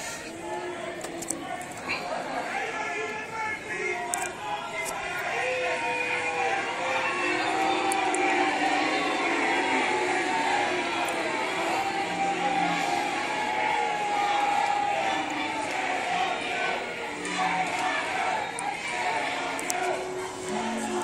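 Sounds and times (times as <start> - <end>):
crowd noise: 0.0 - 21.0
protesters chanting and shouting: 0.0 - 21.0.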